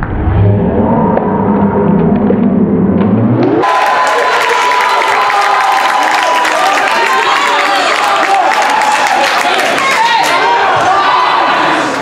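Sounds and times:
muffled slowed-down replay sound: 0.0s - 3.6s
crowd cheering and shouting: 3.3s - 12.0s.

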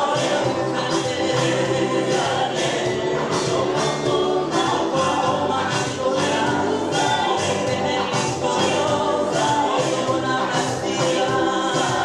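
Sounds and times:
choir singing gospel: 0.0s - 12.0s.

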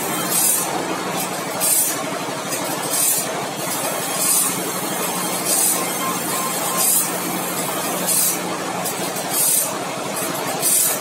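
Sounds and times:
grinding wheel hissing: 0.0s - 2.0s, 2.9s - 11.0s.

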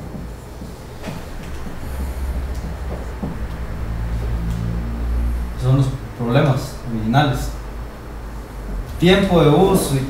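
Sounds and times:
faint hum: 0.0s - 10.0s
low steady rumble: 0.0s - 10.0s.

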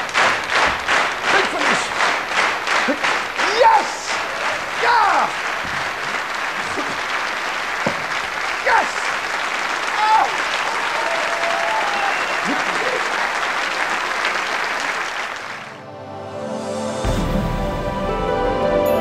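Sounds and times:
audience applauding: 0.0s - 15.8s
crowd shouting and cheering: 0.0s - 15.8s.

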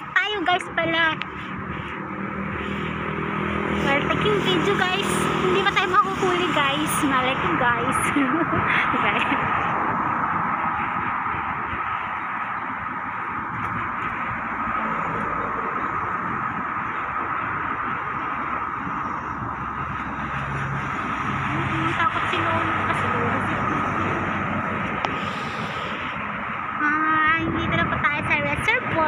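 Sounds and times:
road traffic rushing: 0.0s - 29.0s.

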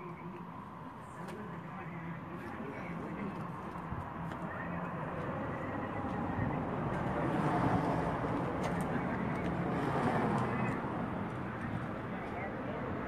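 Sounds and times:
indistinct voices: 0.0s - 13.0s
traffic passing: 0.0s - 13.0s.

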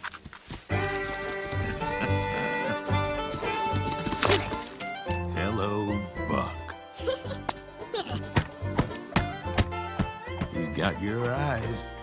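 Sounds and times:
film soundtrack music: 0.7s - 12.0s.

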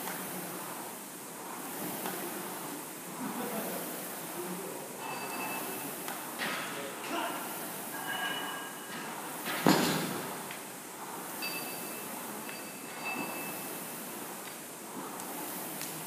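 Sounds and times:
rowing machine flywheel whooshing: 0.0s - 16.0s
thin squeaks: 5.0s - 6.0s, 8.0s - 8.9s, 11.4s - 14.0s
loud thud: 9.6s - 10.4s.

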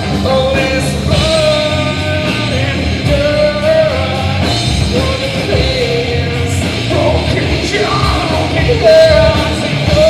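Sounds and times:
live rock band playing: 0.0s - 10.0s
person singing: 0.0s - 10.0s.

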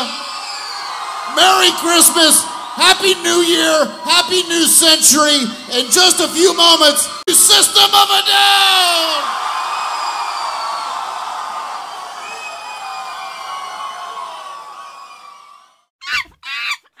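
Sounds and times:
people yelling: 0.0s - 15.7s
crowd cheering and whooping: 0.0s - 15.9s.

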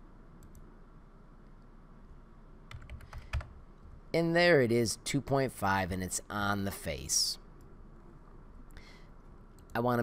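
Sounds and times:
faint background hiss: 0.0s - 10.0s
keyboard keystrokes: 2.7s - 3.5s.

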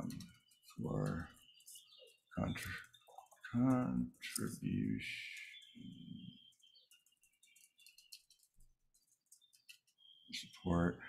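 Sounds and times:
faint keyboard typing: 0.0s - 10.6s.

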